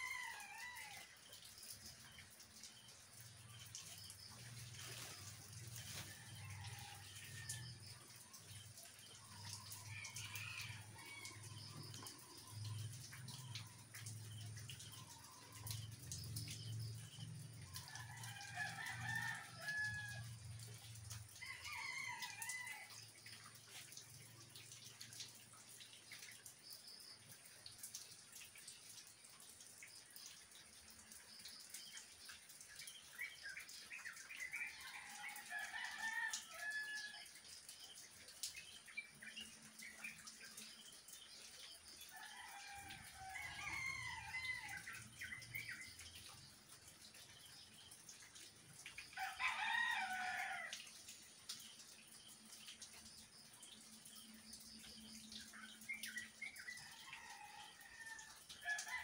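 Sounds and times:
rain on foliage: 0.0s - 59.0s
water drips: 0.0s - 59.0s.

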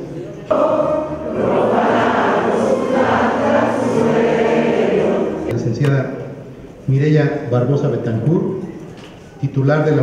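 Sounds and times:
choir singing: 0.4s - 5.5s.

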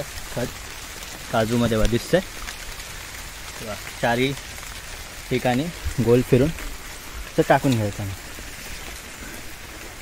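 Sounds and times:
rain falling on leaves: 0.0s - 10.0s.

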